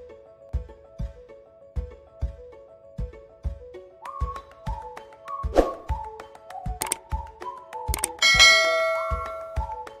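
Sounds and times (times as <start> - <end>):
background music with steady beat: 0.0 - 10.0
bell chime: 8.2 - 9.7.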